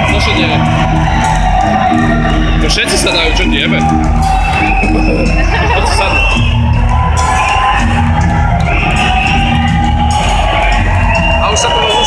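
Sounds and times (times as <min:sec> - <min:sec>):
crowd cheering: 0:00.0 - 0:12.0
live rock music: 0:00.0 - 0:12.0.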